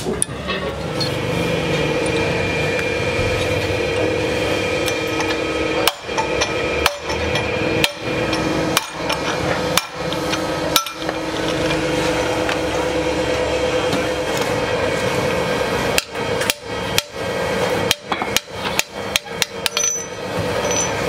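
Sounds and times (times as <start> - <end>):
hammer striking steel: 4.8 - 11.5, 15.9 - 17.2, 17.8 - 21.0.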